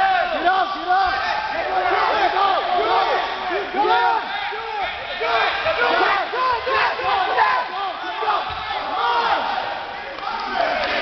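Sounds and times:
spectators yelling and shouting: 0.0 - 11.0.

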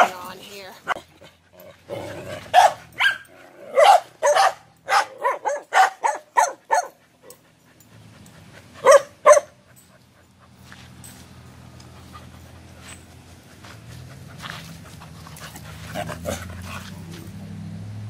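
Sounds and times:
dog barking: 2.5 - 7.4, 8.8 - 9.6.

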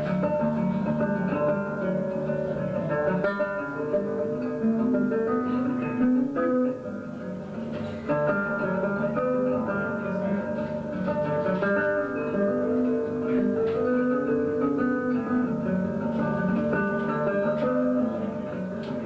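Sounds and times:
acoustic guitar playing: 0.0 - 19.0.

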